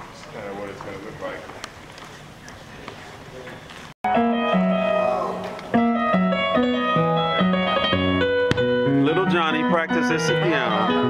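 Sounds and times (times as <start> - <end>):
electronic keyboard chords and bass: 4.0 - 11.0.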